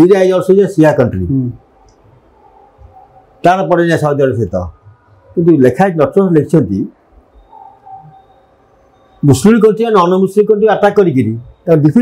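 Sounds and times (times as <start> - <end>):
room noise: 0.0 - 12.0
faint high tone: 7.3 - 10.3.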